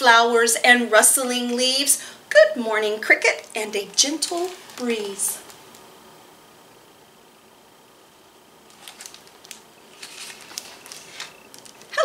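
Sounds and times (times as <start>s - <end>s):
book pages turning: 4.0s - 5.8s, 8.7s - 12.0s.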